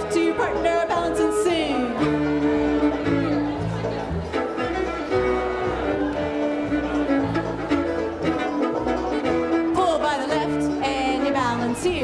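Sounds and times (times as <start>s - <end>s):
fiddle-led dance band: 0.0s - 12.0s.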